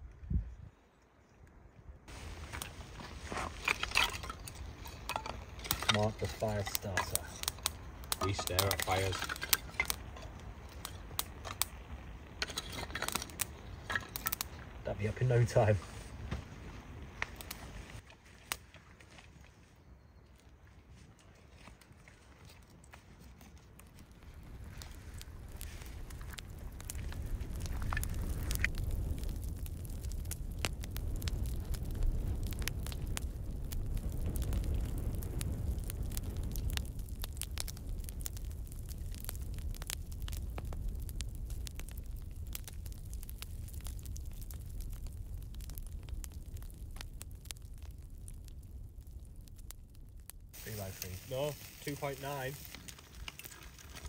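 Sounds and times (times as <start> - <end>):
fire low rumble: 0.0 - 54.0
wood fire crackling and popping: 1.5 - 54.0.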